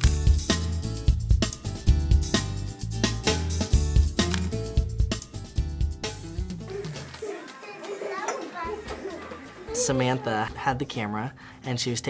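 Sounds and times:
young children chattering: 0:06.7 - 0:10.6.

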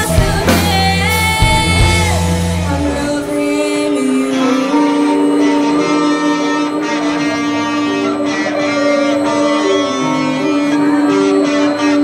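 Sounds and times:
live rock band music: 0:00.0 - 0:12.0
long held guitar notes: 0:00.0 - 0:12.0.

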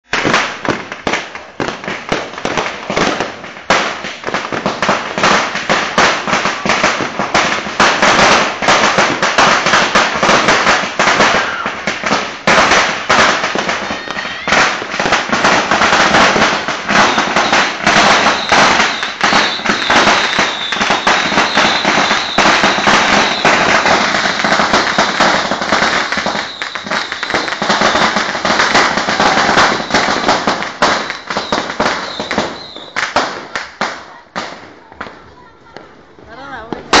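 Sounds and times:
firecrackers banging rapidly: 0:00.0 - 0:37.0.

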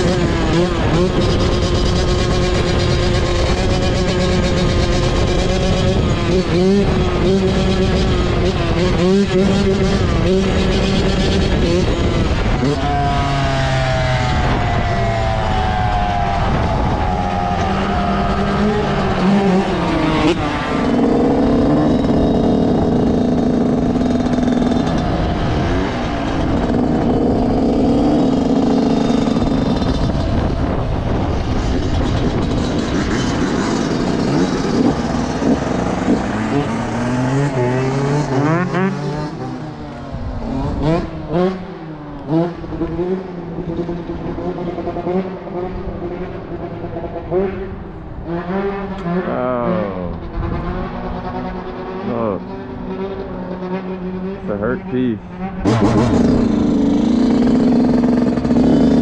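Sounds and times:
two-stroke motorcycle engine revving: 0:00.0 - 0:59.0.

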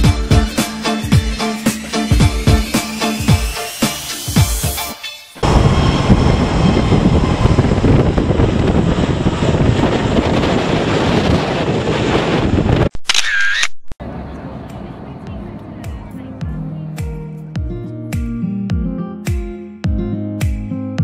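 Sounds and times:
jet engines roaring at takeoff: 0:05.4 - 0:12.8.

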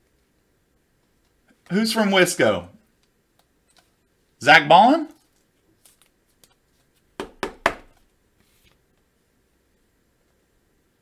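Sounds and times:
quick sharp knocks: 0:07.2 - 0:08.0.

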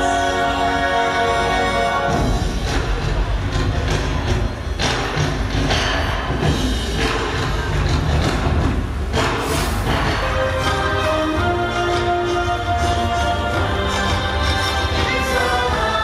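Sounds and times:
rushing swells: 0:00.0 - 0:16.0
soundtrack music over loudspeakers: 0:00.0 - 0:16.0.

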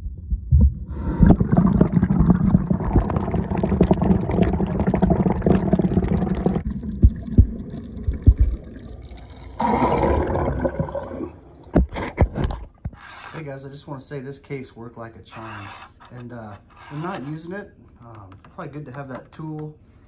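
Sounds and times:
water sloshing and gurgling: 0:00.0 - 0:13.0
water splashing: 0:00.9 - 0:12.2.

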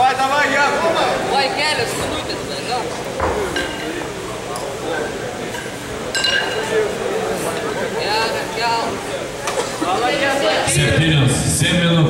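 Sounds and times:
kettlebells clinking: 0:05.5 - 0:06.7.

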